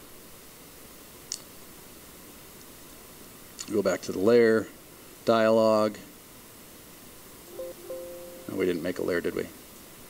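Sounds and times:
low steady hiss: 0.0s - 10.0s
faint two-note hum: 7.5s - 9.0s.

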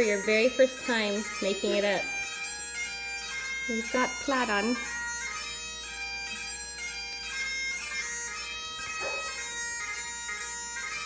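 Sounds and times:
bagpipe chanter melody: 0.0s - 11.0s
bagpipe drones: 0.0s - 11.0s.

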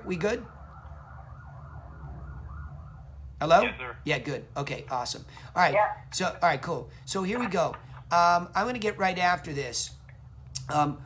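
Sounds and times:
distant siren sweeping up and down: 0.0s - 4.1s
steady low hum: 0.0s - 11.0s.

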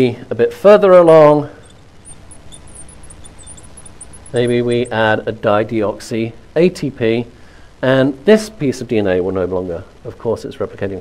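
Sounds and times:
marker squeaking on glass board: 1.6s - 5.0s.

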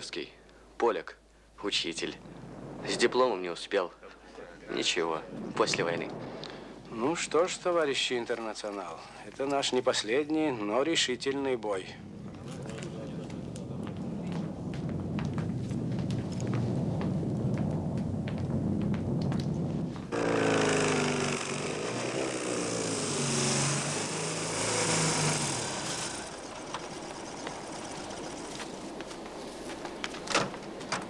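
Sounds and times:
low rumble: 1.7s - 9.3s, 11.8s - 31.0s
loud hiss: 20.1s - 29.7s
car engine slowing: 20.1s - 29.8s.

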